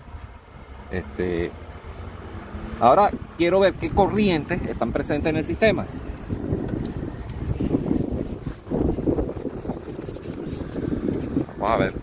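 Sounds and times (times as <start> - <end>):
wind buffeting microphone: 1.6 - 12.0.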